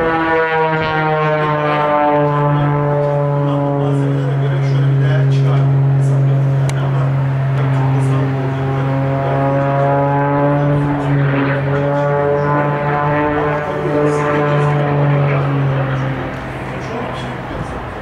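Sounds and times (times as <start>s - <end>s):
propeller engine running: 0.0s - 18.0s.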